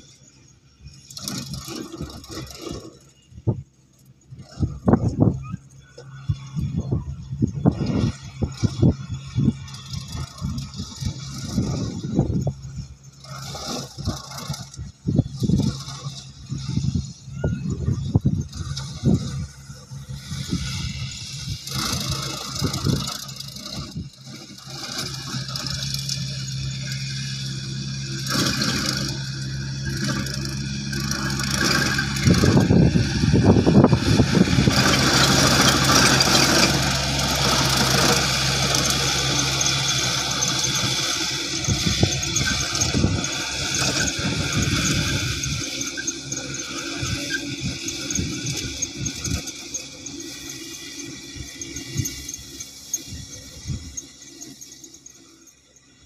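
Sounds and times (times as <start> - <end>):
tractor engine running under load: 0.0 - 56.0.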